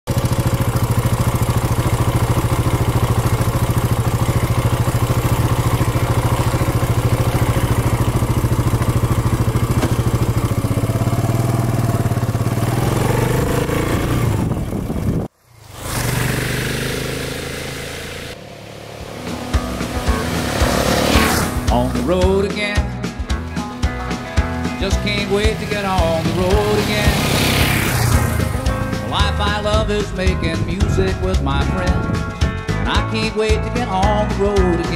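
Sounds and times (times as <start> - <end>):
motorcycle engine running: 0.0 - 34.9.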